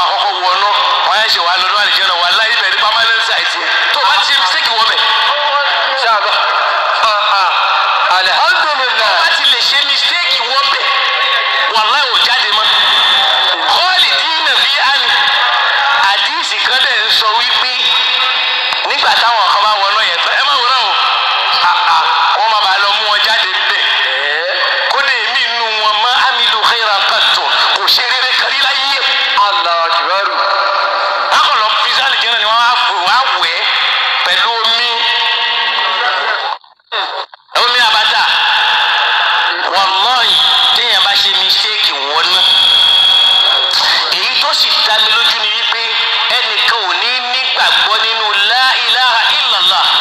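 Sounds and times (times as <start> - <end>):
person talking radio-like: 0.0 - 50.0.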